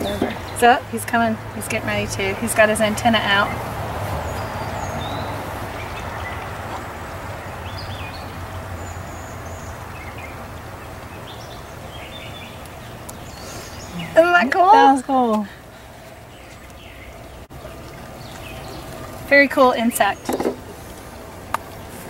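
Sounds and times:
rushing rumble: 0.0s - 22.0s.

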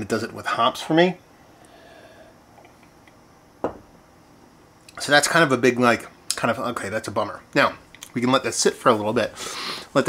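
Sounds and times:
glass knocking on wooden table: 3.6s - 3.9s.

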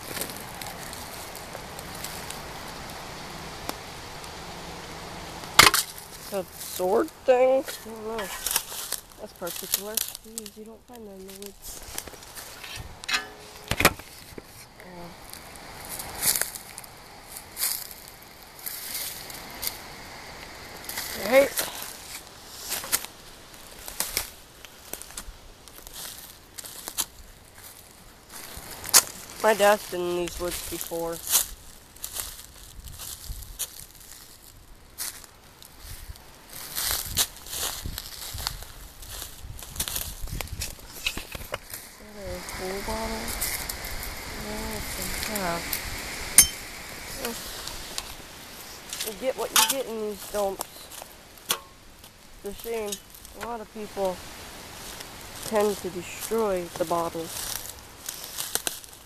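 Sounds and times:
footsteps crunching through dry leaves: 0.0s - 59.0s
sharp knocks and bumps: 12.4s - 14.5s.

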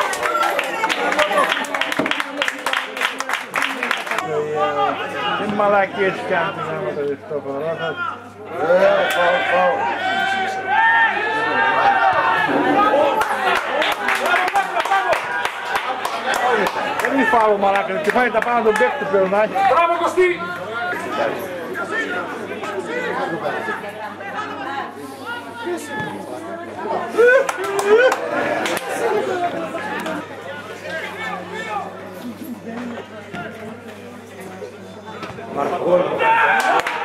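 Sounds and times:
indistinct chatter of voices: 0.0s - 37.0s
people laughing: 26.9s - 30.0s.

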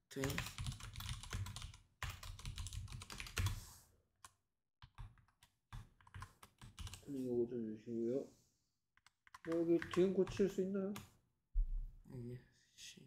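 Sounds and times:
computer keyboard typing: 0.2s - 3.6s, 4.2s - 7.0s, 9.0s - 11.1s.

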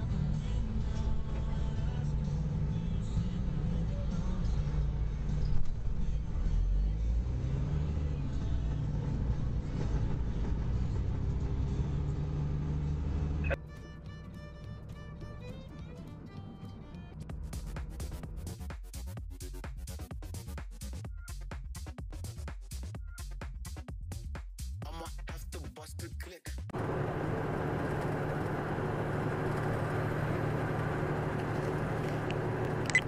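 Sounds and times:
truck engine and cab rumble: 0.0s - 18.4s, 26.7s - 33.0s
electronic music with beat: 17.1s - 26.7s.

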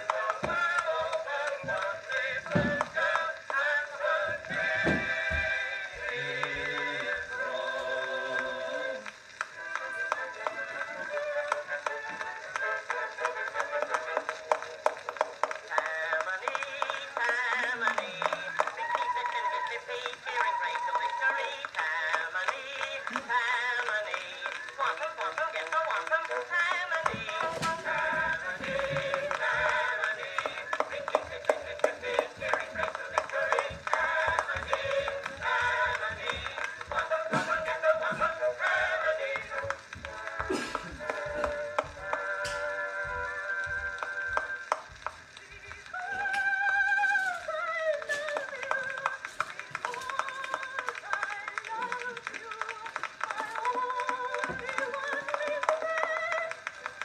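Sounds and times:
mixed chorus singing: 0.0s - 51.0s
record surface crackle: 0.0s - 57.0s.

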